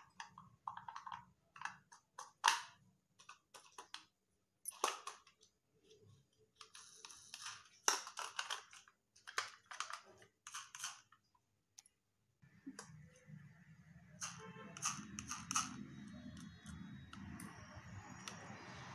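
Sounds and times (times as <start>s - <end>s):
plastic capsules clicking and crinkling: 0.0s - 5.5s, 6.6s - 11.2s, 14.2s - 18.9s.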